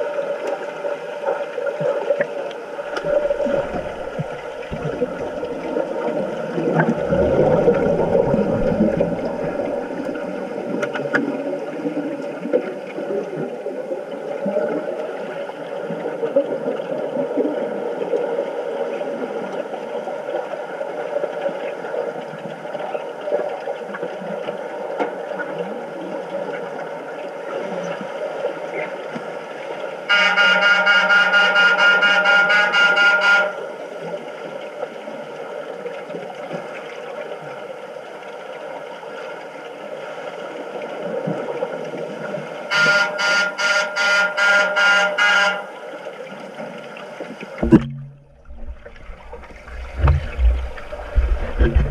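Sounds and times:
hiss of water and bubbles: 0.0s - 29.9s, 46.4s - 51.9s
underwater signal horn blasts: 2.9s - 6.8s, 30.1s - 33.8s, 42.7s - 45.9s, 47.6s - 50.2s.

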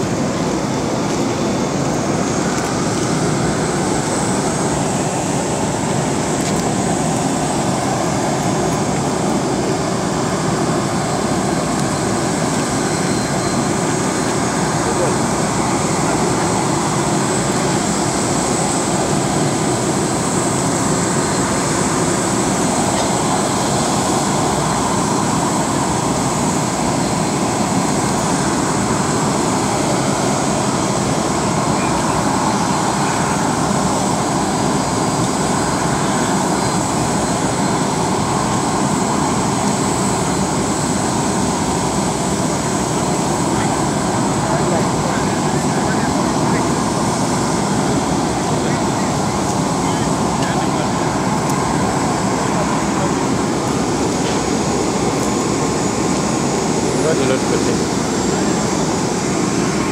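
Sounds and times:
jet airliner roar: 0.0s - 59.9s
thin high whine: 0.0s - 59.9s
crowd voices: 12.0s - 27.1s, 28.2s - 38.1s, 42.6s - 59.9s.

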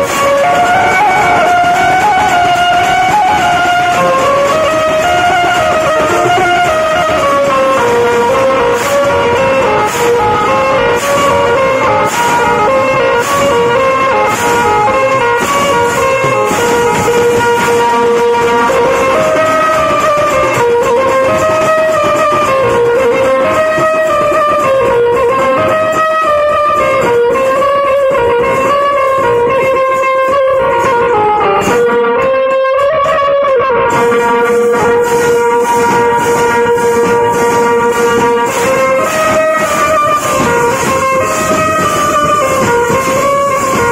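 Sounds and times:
brass cymbals crashing: 0.0s - 43.9s
dense drumming: 0.0s - 43.9s
melody of held notes: 0.0s - 43.9s.

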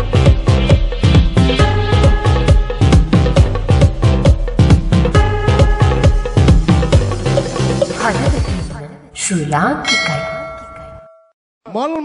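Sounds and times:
bell-like ding: 9.8s - 11.4s.

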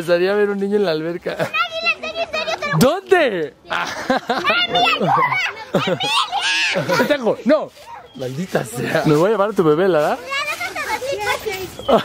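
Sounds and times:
children laughing and calling out: 1.0s - 12.0s.

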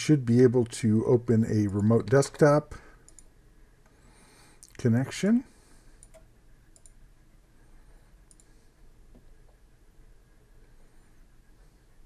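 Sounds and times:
computer mouse clicks: 3.0s - 4.0s, 6.0s - 7.0s, 8.2s - 8.6s.

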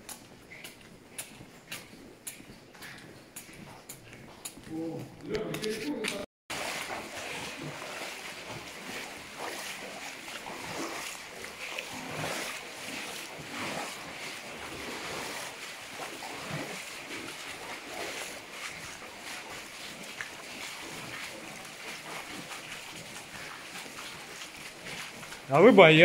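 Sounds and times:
footsteps wading through water: 0.0s - 26.0s.

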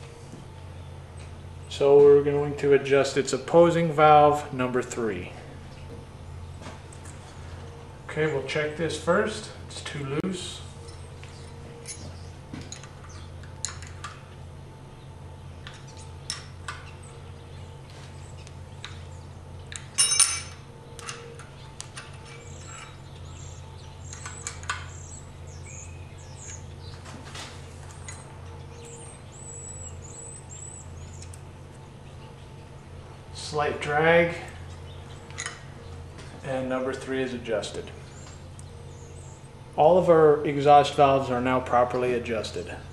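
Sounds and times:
steady low hum: 0.0s - 42.9s
metallic wrench clinks: 20.0s - 20.6s
faint bird chirps: 27.9s - 32.7s.

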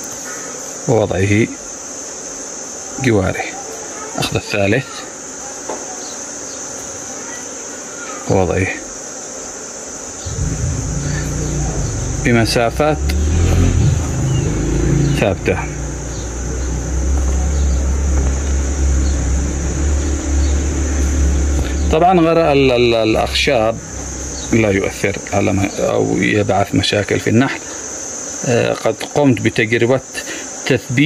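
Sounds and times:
high-pitched hiss: 0.0s - 31.0s
high-pitched insect drone: 0.0s - 31.0s
low rumble: 10.2s - 25.4s.

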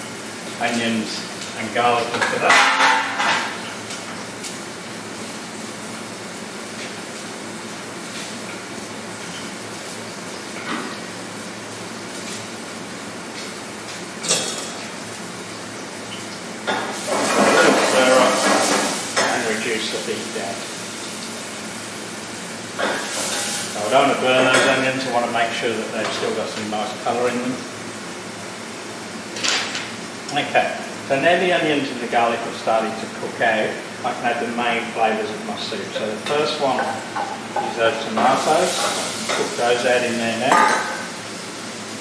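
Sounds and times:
onions sizzling in oil: 0.0s - 42.0s.

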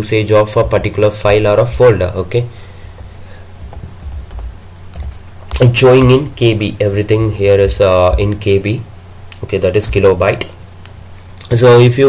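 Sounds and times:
low steady hum: 0.0s - 12.0s
keyboard keys clicking: 2.8s - 5.6s.

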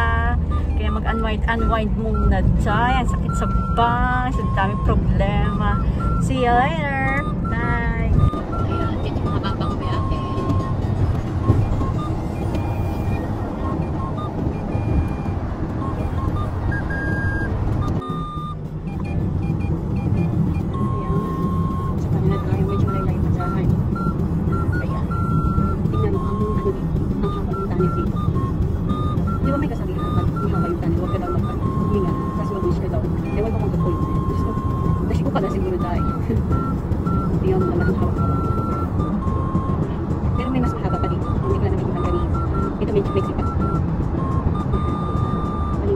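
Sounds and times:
car road and engine rumble: 0.0s - 45.9s.

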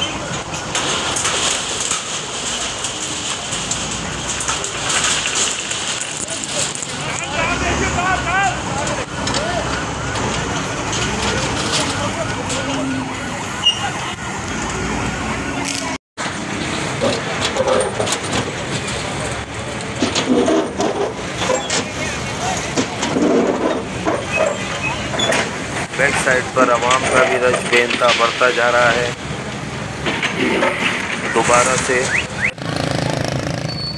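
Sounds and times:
crashes and clatter of metal sheets: 0.0s - 13.1s, 15.7s - 33.4s
excavator diesel engine: 0.0s - 33.9s
crowd raised voices: 6.0s - 16.0s.

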